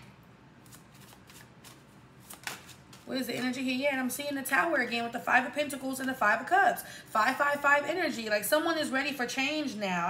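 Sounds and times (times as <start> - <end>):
cards being shuffled: 0.6 - 3.4.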